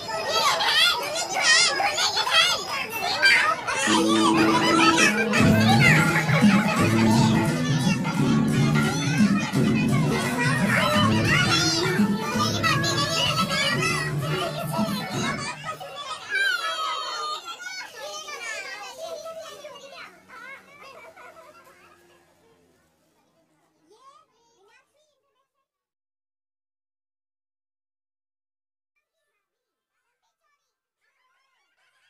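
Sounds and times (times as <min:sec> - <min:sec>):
crowd chattering and laughing: 0:00.0 - 0:25.4
background music: 0:03.9 - 0:15.5.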